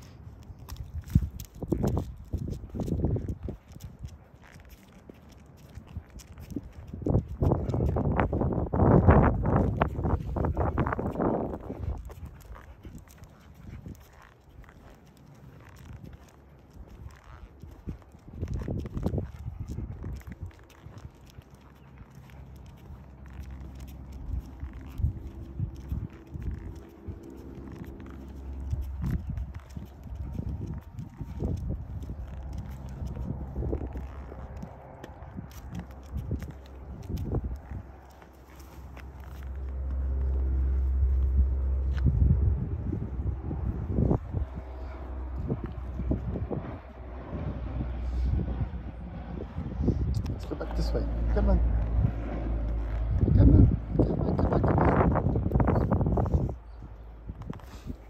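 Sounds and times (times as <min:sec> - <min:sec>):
footstep scuffs on pavement: 0:00.0 - 0:53.2
wind rumbling on microphone: 0:00.0 - 0:58.0.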